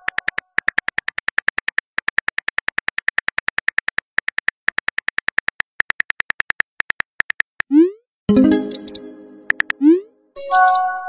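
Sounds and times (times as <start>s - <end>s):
smartphone keyboard clicks: 0.0s - 7.5s.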